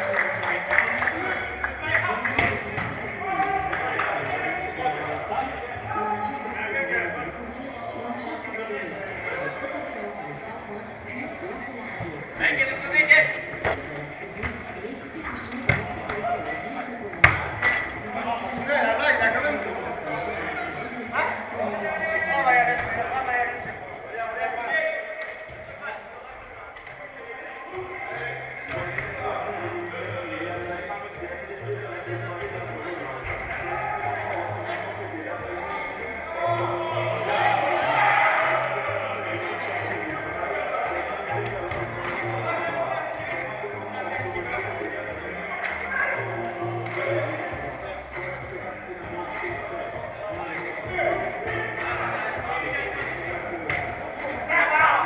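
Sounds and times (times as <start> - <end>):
players shouting indoors: 0.0 - 11.4, 32.3 - 55.0.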